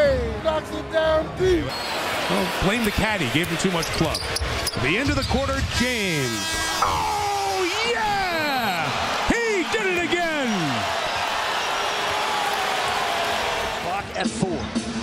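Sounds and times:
arena crowd noise: 0:00.0 - 0:15.0
commentators exclaiming: 0:06.2 - 0:11.0.

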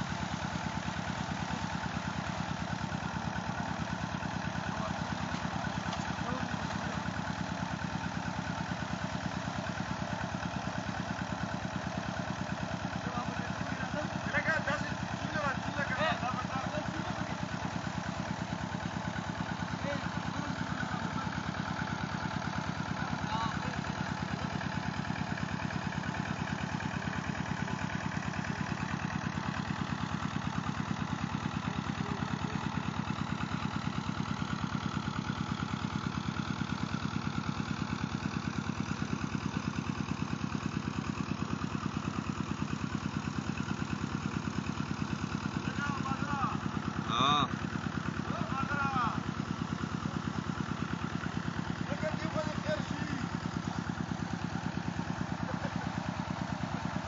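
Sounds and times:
flywheel engine running: 0:00.0 - 0:57.0.

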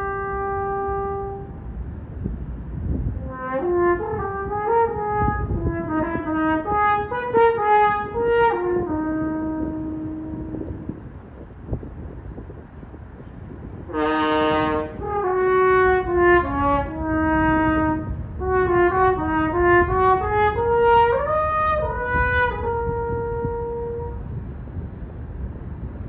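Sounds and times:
solo french horn melody: 0:00.0 - 0:01.8, 0:03.0 - 0:11.1, 0:13.8 - 0:24.4.

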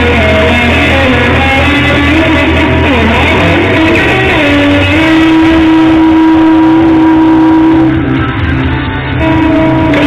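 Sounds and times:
electric guitar sustained note: 0:00.0 - 0:10.0.

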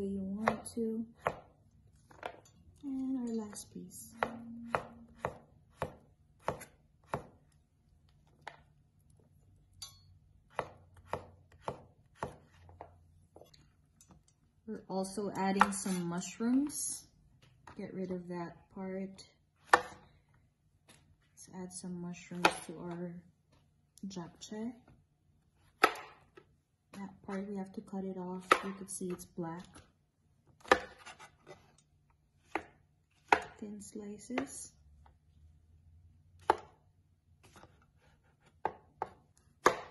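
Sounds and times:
knife chopping on wooden board: 0:00.4 - 0:02.4, 0:04.1 - 0:07.4, 0:10.5 - 0:13.0, 0:19.6 - 0:20.0, 0:25.7 - 0:26.3, 0:30.6 - 0:31.6, 0:32.4 - 0:33.6, 0:36.4 - 0:36.8, 0:37.4 - 0:39.9.

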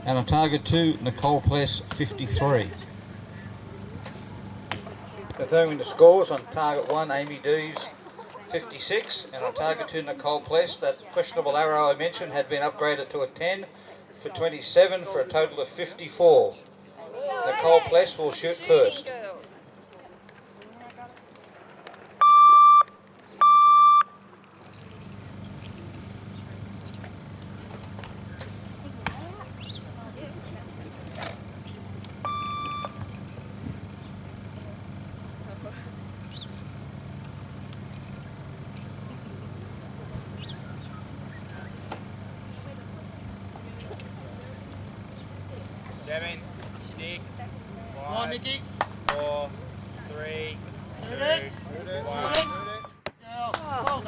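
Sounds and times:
low background hum: 0:00.0 - 0:54.0
electronic timing beeps: 0:22.2 - 0:24.1, 0:32.2 - 0:33.0, 0:52.4 - 0:53.0.

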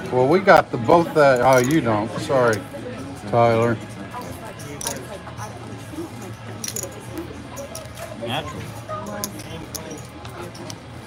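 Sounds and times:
murmur of chatter: 0:00.0 - 0:11.0
cards and chips clicking: 0:04.2 - 0:05.1, 0:06.2 - 0:08.1, 0:09.1 - 0:10.9.

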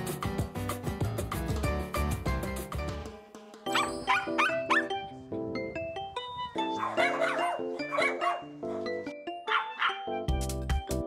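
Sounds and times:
light background music: 0:00.0 - 0:11.0
small dog yipping: 0:03.7 - 0:04.9, 0:06.6 - 0:08.5, 0:09.5 - 0:10.3.

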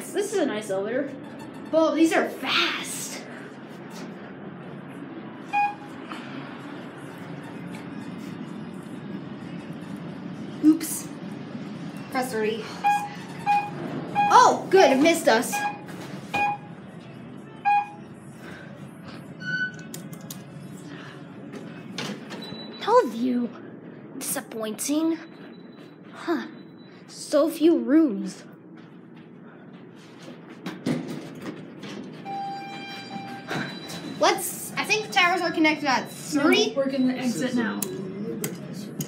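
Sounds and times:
elevator car hum: 0:03.3 - 0:24.2, 0:28.6 - 0:37.8
elevator beeps: 0:05.4 - 0:06.1, 0:12.7 - 0:14.7, 0:15.4 - 0:16.8, 0:17.5 - 0:18.2, 0:19.3 - 0:19.9, 0:22.2 - 0:23.1, 0:25.1 - 0:27.1, 0:32.2 - 0:35.0, 0:35.7 - 0:38.0
higher longer elevator tone: 0:32.2 - 0:34.3.

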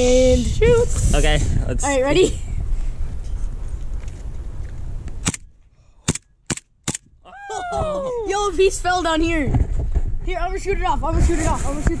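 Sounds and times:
airsoft pistol shots: 0:05.2 - 0:05.4, 0:06.1 - 0:07.0.

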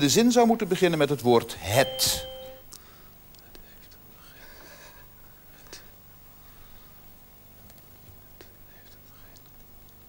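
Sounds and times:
faint whispering: 0:08.1 - 0:09.6.

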